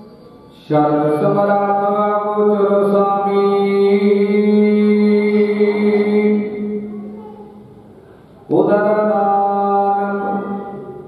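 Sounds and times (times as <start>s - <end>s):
devotional chanting: 0.0s - 7.6s, 8.3s - 11.0s.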